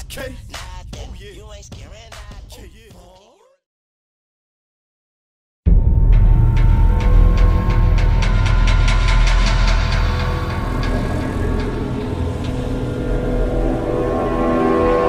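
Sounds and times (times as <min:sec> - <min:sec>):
dark cinematic music: 0:05.7 - 0:15.0
heavy low rumble: 0:05.7 - 0:15.0
sustained chords: 0:05.7 - 0:15.0.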